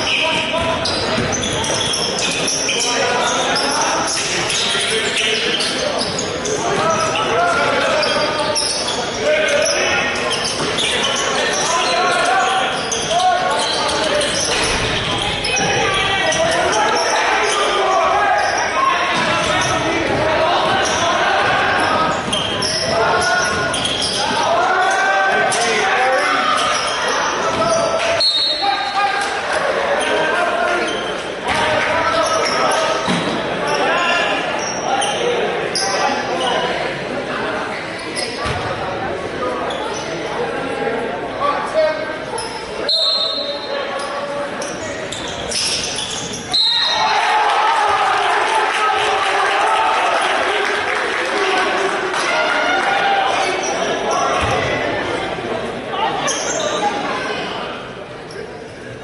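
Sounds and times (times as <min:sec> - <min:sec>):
players calling out: 0:00.0 - 0:41.0.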